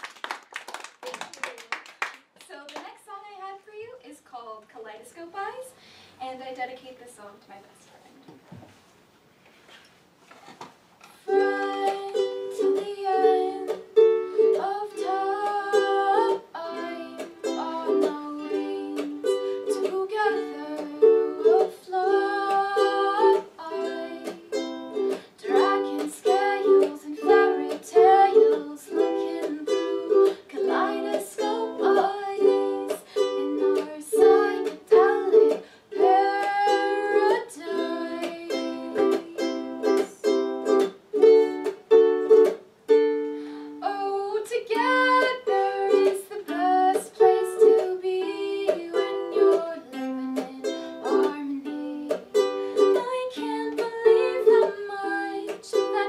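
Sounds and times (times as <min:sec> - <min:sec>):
ukulele strumming chords: 0:11.3 - 0:56.0.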